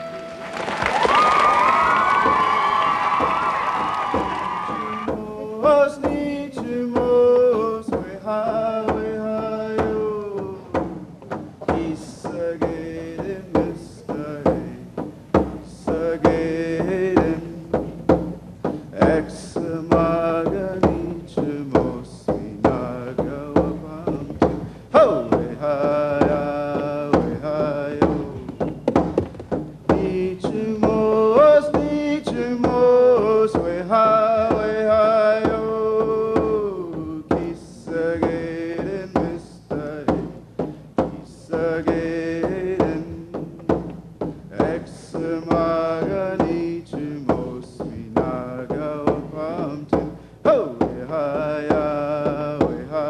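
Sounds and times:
hand drum beat: 0:00.0 - 0:53.0
men singing a chant-like song: 0:04.6 - 0:10.8, 0:11.6 - 0:15.0, 0:15.7 - 0:17.9, 0:18.9 - 0:28.7, 0:29.9 - 0:43.8, 0:44.4 - 0:53.0.

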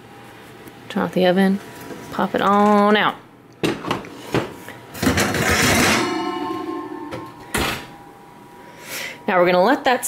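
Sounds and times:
clattering noise: 0:03.6 - 0:07.9
steady tone: 0:05.8 - 0:08.8.

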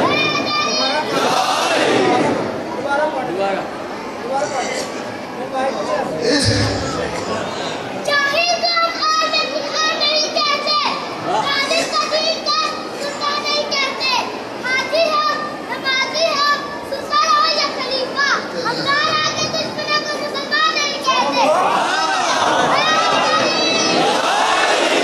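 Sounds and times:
crowd shouting together: 0:00.0 - 0:02.5, 0:21.4 - 0:25.0.

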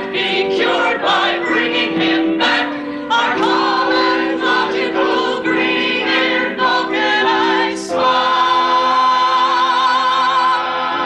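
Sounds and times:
people singing in chorus: 0:00.0 - 0:11.0.

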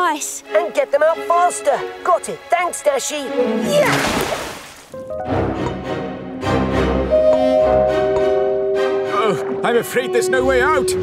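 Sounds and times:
background music with held notes: 0:00.0 - 0:03.9, 0:04.9 - 0:11.0
water splash: 0:03.7 - 0:05.0.

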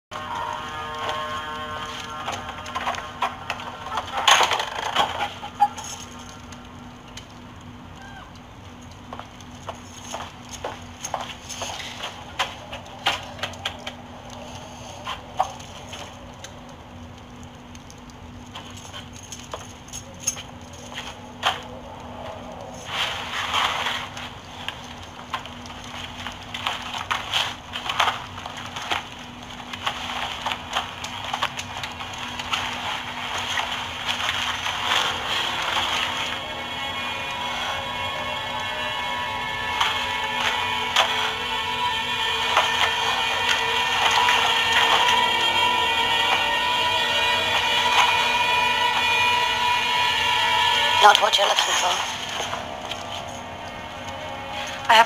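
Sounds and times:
steady low hum: 0:00.1 - 0:55.0.

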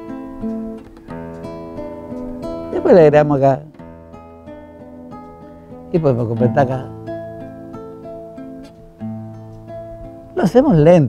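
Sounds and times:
classical guitar plucked fingerstyle: 0:00.0 - 0:11.0.

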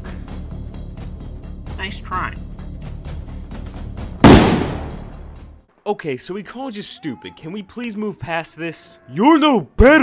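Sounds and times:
background music: 0:00.0 - 0:10.0
loud pistol shot: 0:04.2 - 0:05.0.

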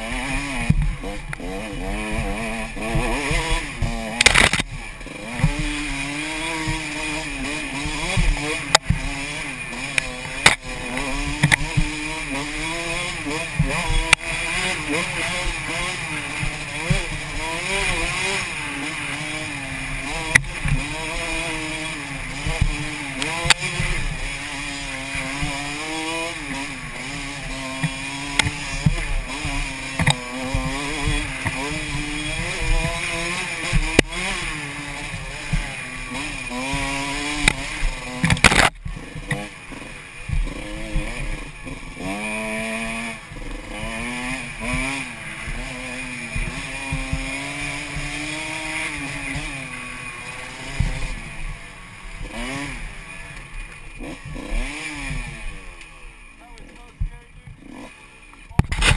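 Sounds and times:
dirt bike engine revving: 0:00.0 - 0:58.9
knocks and rattles over bumps: 0:00.1 - 0:58.9
loud clatter: 0:58.5 - 0:58.9.

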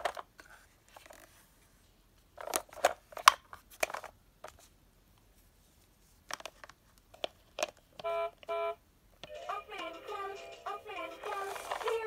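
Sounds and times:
tinny synthesized children's song: 0:09.3 - 0:12.0.

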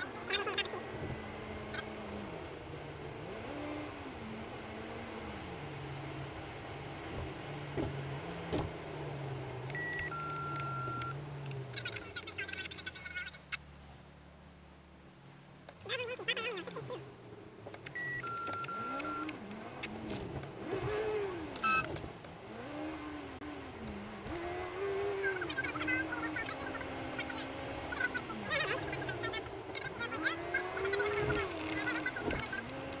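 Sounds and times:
two-tone electronic beep: 0:09.8 - 0:11.2, 0:18.0 - 0:19.3, 0:21.6 - 0:21.9
person speaking: 0:15.8 - 0:17.0, 0:25.2 - 0:32.7.

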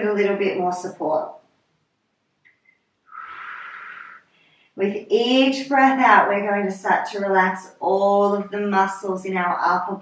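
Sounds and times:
woman breathing: 0:03.1 - 0:04.8.

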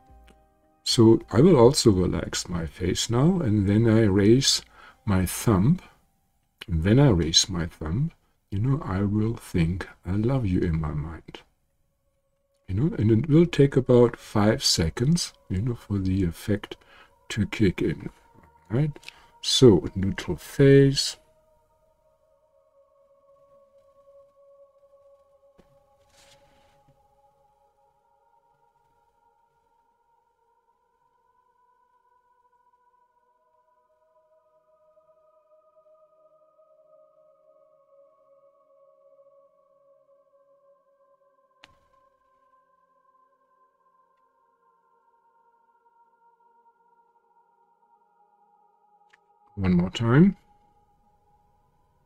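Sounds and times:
faint steady drone: 0:00.0 - 0:52.0.

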